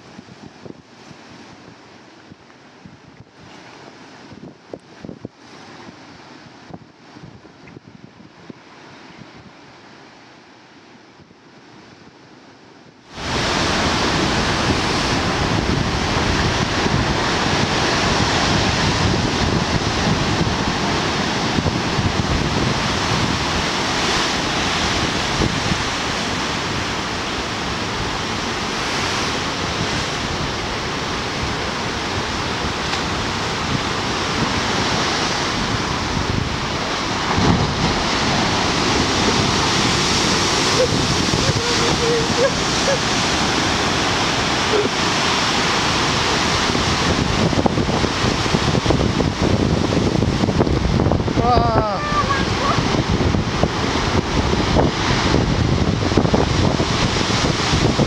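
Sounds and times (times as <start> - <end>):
wind buffeting microphone: 0.0 - 9.6, 13.1 - 58.0
surf washing over rocks: 0.0 - 10.9, 13.0 - 58.0
storm waves breaking: 13.0 - 58.0.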